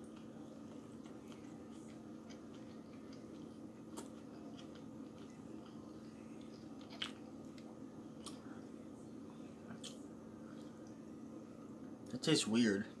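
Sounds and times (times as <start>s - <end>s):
person chewing: 0.0s - 8.7s.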